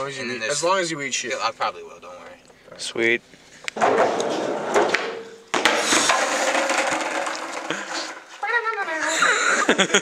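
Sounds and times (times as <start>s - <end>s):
skateboard landing clack: 3.7s - 8.8s
skateboard wheels rattling on bricks: 3.8s - 9.0s.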